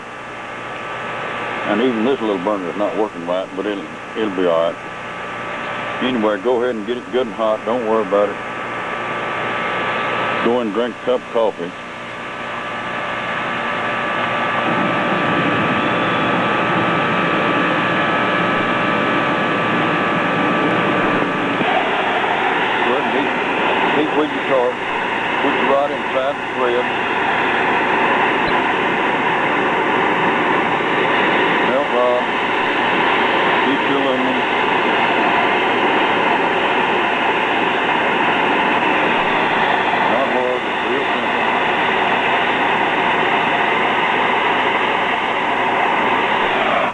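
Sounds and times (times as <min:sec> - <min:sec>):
gas burner flame rushing: 0:00.0 - 0:46.9.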